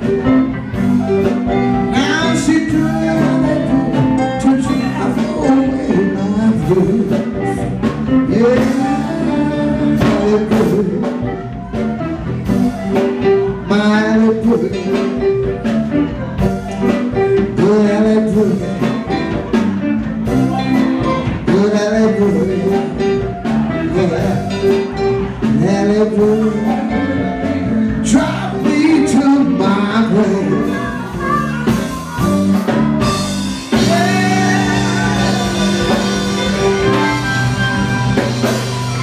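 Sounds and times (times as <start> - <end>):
bass guitar: 0.0 - 39.0
drums: 0.0 - 39.0
electric guitar: 0.0 - 39.0
woman singing: 1.9 - 10.9
amplified harmonica: 33.5 - 39.0.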